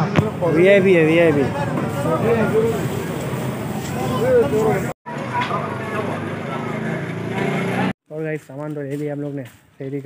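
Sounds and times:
people talking: 0:00.0 - 0:07.1, 0:07.8 - 0:10.0.

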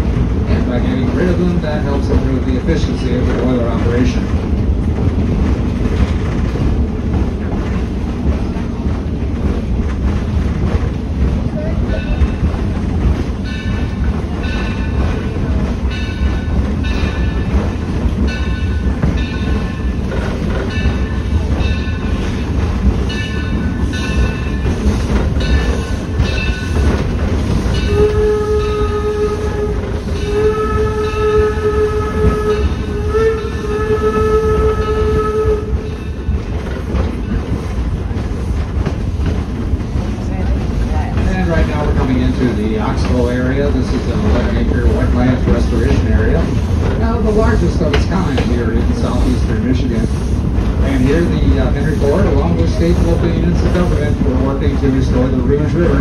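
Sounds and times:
train coach rumble and rail clatter: 0:00.0 - 0:56.0
steam whistle blasts: 0:27.9 - 0:35.9.

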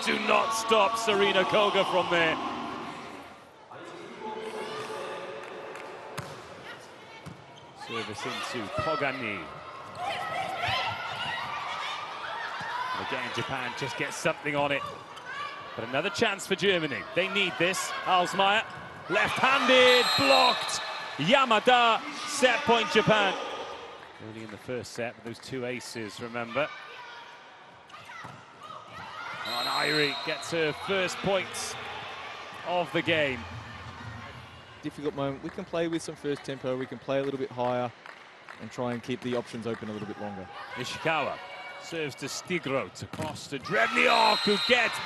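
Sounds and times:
crowd noise: 0:00.0 - 0:24.8, 0:27.3 - 0:36.8, 0:37.9 - 0:45.0
volleyball court noises: 0:00.0 - 0:45.0.

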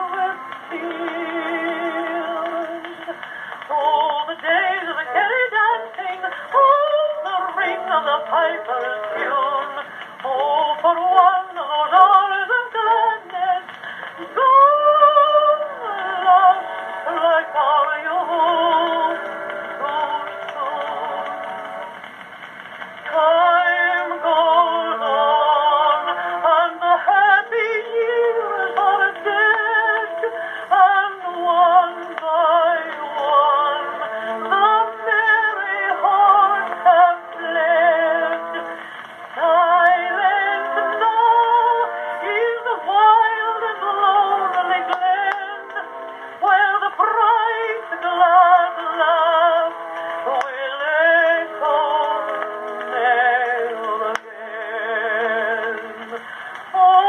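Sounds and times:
female singer with orchestra: 0:00.0 - 0:21.7, 0:23.1 - 0:57.0.

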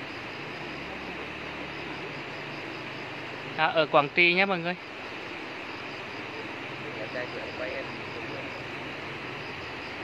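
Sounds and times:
faint distant voices: 0:00.0 - 0:05.0.

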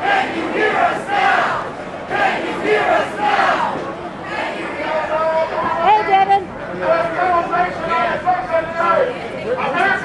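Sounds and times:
crowd chanting: 0:00.0 - 0:05.1.

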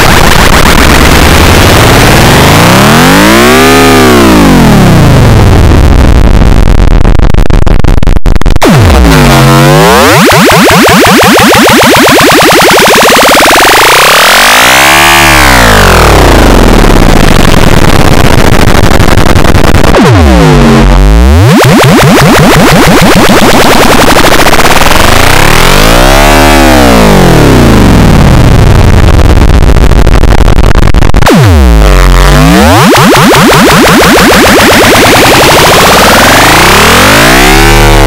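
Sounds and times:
distorted phone startup jingle: 0:00.0 - 0:05.2, 0:08.6 - 0:17.0, 0:31.3 - 0:38.0.

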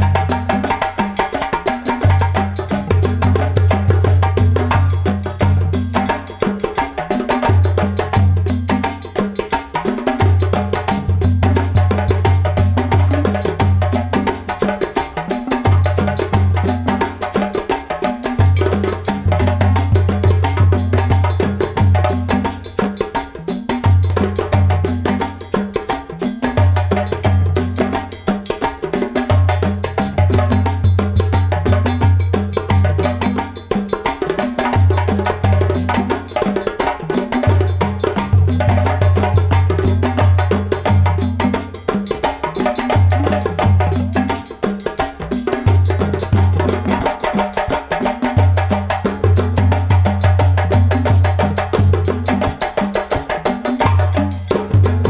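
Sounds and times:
busy percussion beat: 0:00.0 - 0:55.0.

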